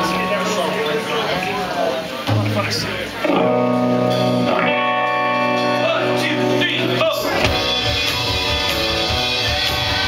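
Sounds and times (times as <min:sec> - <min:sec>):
rock band playing live: 0:00.0 - 0:10.0
electric guitar chords ringing: 0:02.2 - 0:10.0.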